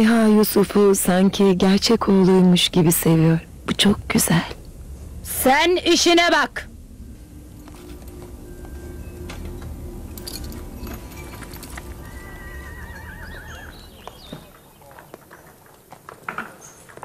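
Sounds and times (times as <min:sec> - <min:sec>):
background music: 0:00.0 - 0:14.7
horse whinnying: 0:11.5 - 0:14.3.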